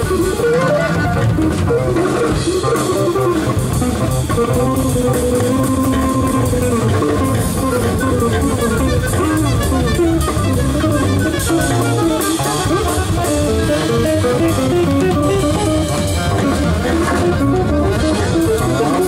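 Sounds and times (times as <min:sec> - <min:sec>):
alto saxophone: 0:00.0 - 0:19.0
drum kit: 0:00.0 - 0:19.0
electric guitar: 0:00.0 - 0:19.0
plucked double bass: 0:00.0 - 0:19.0.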